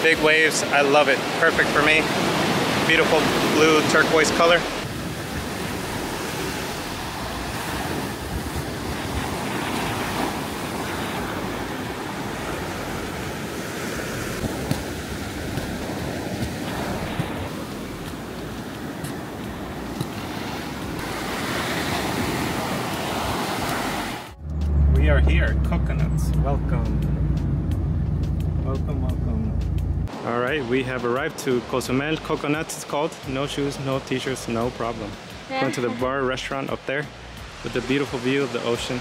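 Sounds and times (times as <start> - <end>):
ocean waves breaking on beach: 0.0 - 24.4, 30.1 - 39.0.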